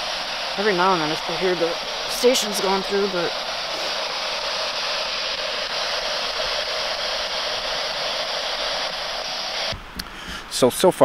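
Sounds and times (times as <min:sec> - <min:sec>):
radio static hiss: 0:00.0 - 0:09.8.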